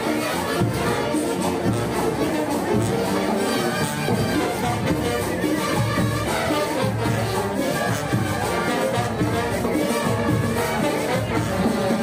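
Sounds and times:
crowd noise: 0:00.0 - 0:12.0
marching band playing: 0:00.0 - 0:12.0.

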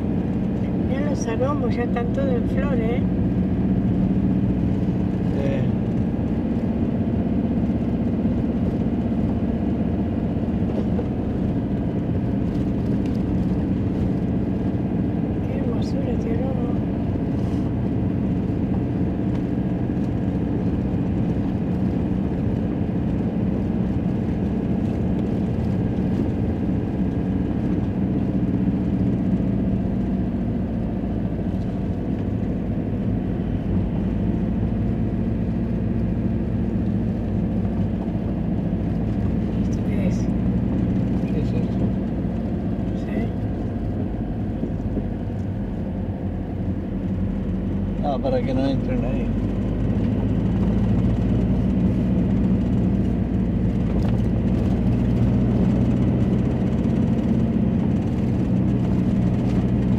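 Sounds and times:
car engine and tyre hum: 0:00.0 - 0:59.9.

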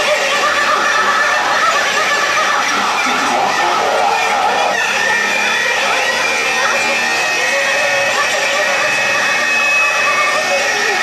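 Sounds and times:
distorted noise with feedback tones: 0:00.0 - 0:11.0.

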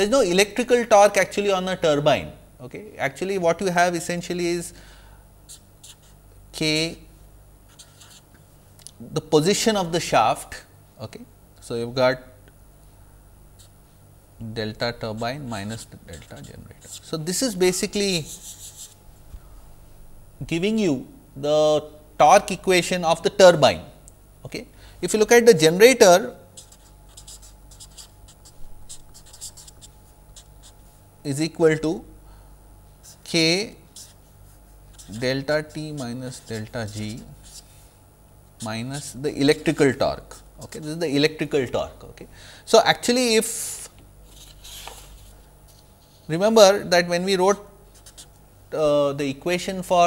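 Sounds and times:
low steady hum: 0:00.0 - 0:50.0
marker writing on paper: 0:05.5 - 0:06.2, 0:07.7 - 0:08.3, 0:15.1 - 0:17.5, 0:18.1 - 0:19.0, 0:26.6 - 0:30.8, 0:33.9 - 0:34.3, 0:34.9 - 0:37.7, 0:48.0 - 0:48.4.

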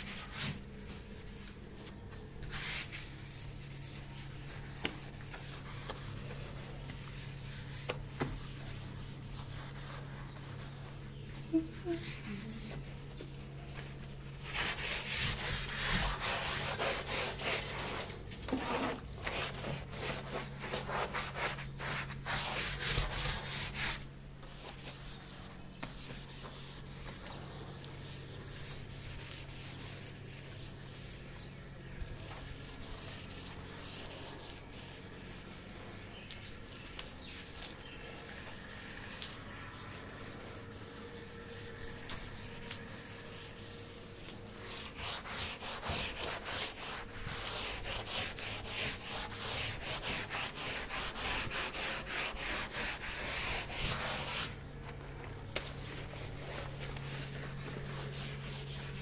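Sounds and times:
scrubbing wet soapy tiles: 0:00.0 - 0:59.0.

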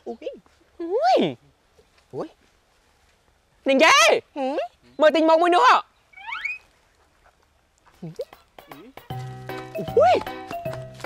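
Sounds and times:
high squeak rising in pitch: 0:06.1 - 0:06.6.

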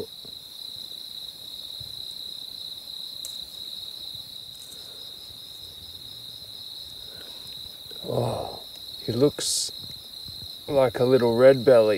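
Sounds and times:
crickets chirping: 0:00.0 - 0:11.9.

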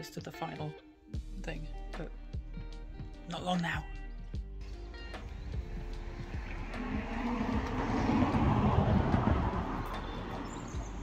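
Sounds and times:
vehicle passing by: 0:05.2 - 0:11.0.

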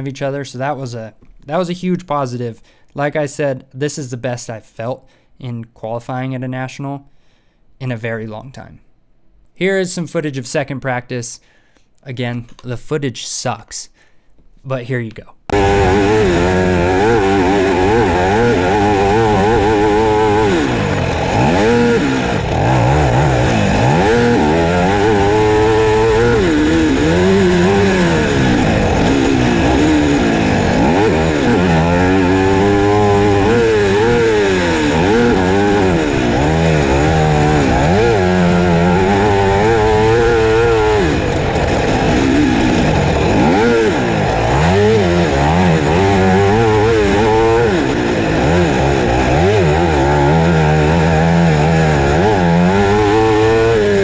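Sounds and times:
motocross engine revving: 0:15.5 - 0:54.0.

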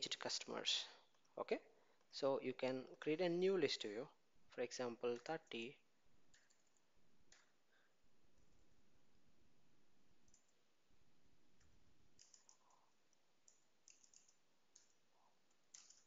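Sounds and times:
computer keyboard typing: 0:06.3 - 0:07.5, 0:10.3 - 0:10.6, 0:11.6 - 0:16.0.

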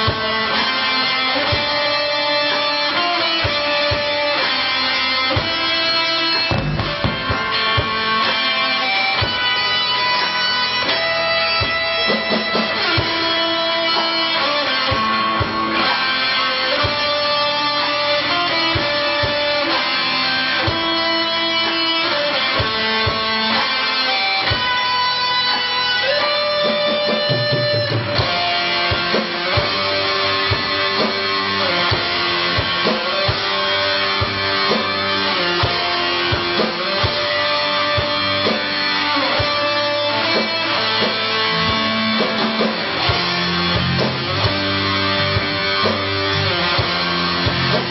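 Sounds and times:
lead guitar long notes: 0:00.0 - 0:47.9
rock band playing blues: 0:00.0 - 0:47.9
drum hits: 0:06.3 - 0:08.4, 0:26.7 - 0:31.2.

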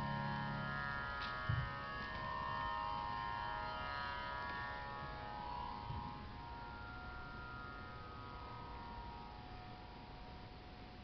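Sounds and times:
harmonium sustained chord: 0:00.0 - 0:11.0.

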